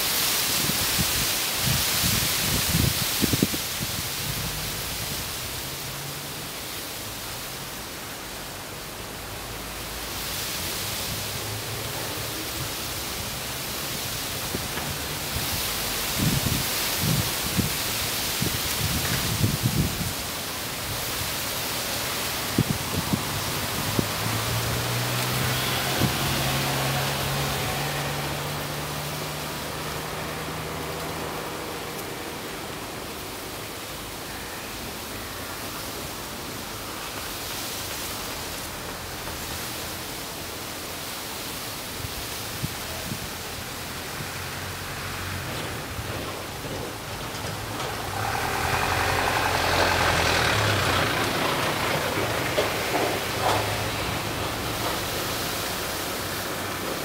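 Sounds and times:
steady outdoor rushing noise: 0.0s - 57.0s.

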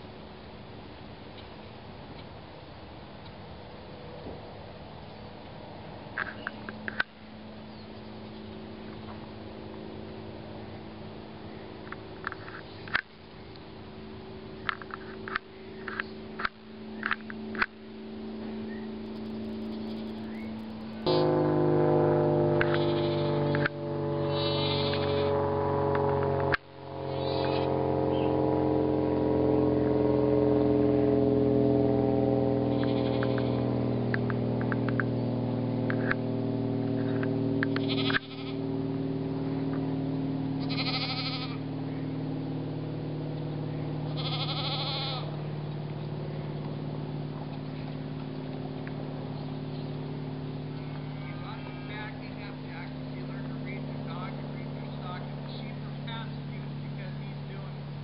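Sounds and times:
goats bleating: 22.6s - 23.7s, 24.3s - 25.3s, 32.7s - 33.7s, 37.7s - 38.6s, 40.6s - 41.6s, 44.1s - 45.4s.

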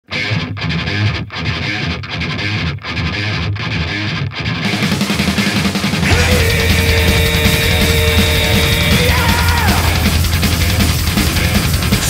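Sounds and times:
distorted electric guitar riff: 0.0s - 12.0s.

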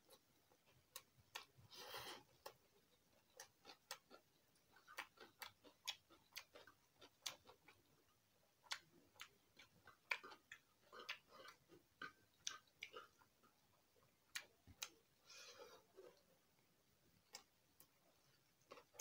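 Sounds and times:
chewing clicks and smacks: 0.6s - 1.6s, 2.4s - 7.9s, 8.6s - 15.0s, 17.2s - 19.0s.

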